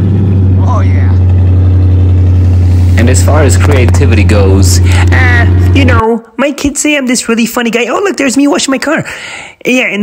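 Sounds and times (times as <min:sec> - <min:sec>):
car engine idling: 0:00.0 - 0:06.0.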